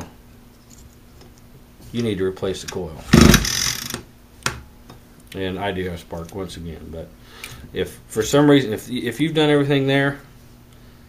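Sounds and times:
recoil starter rope pull: 3.1s - 4.0s
small engine spinning over: 3.2s - 4.0s.

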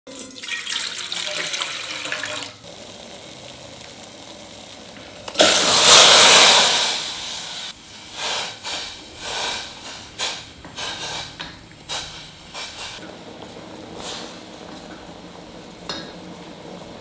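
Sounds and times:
water pouring into metal pot: 0.1s - 7.0s
steady hiss: 4.2s - 17.0s
loud rushing hiss: 5.4s - 13.0s.

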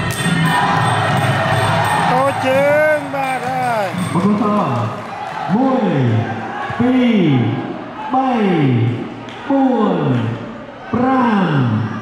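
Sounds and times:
man shouting a count: 2.0s - 4.4s
crowd murmuring: 2.1s - 4.6s.

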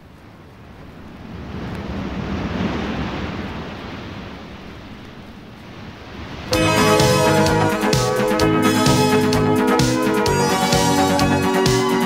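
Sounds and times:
sea waves washing: 0.0s - 12.0s
band playing: 6.5s - 12.0s.

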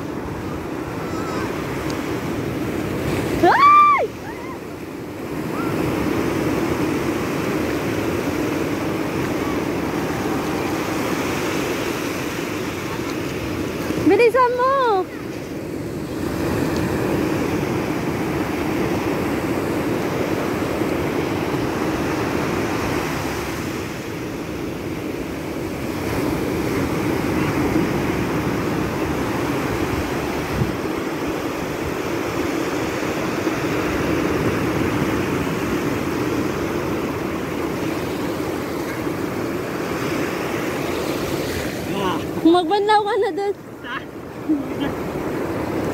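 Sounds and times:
waves breaking on a beach: 0.0s - 45.9s
wind on microphone: 15.0s - 42.6s.

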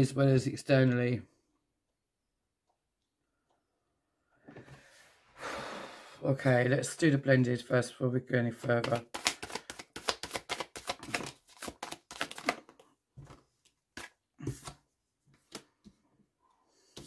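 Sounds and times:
cards shuffling: 8.6s - 14.8s.

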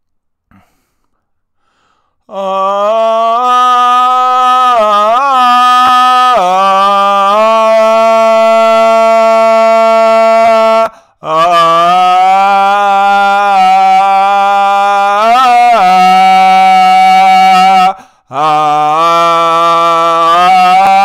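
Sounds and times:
man chanting held vowels: 2.2s - 21.0s.

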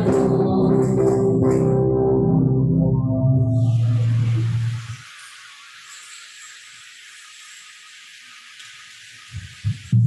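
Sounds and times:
faint high whine: 3.5s - 10.0s
steady high hiss: 3.5s - 10.0s.

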